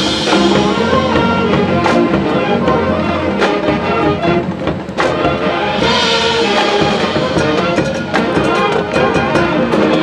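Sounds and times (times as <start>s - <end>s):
marching band playing chords: 0.0s - 10.0s.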